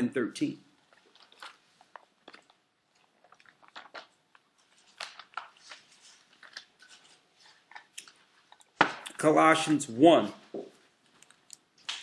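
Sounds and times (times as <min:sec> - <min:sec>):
paper pages rustling: 0:03.8 - 0:08.9.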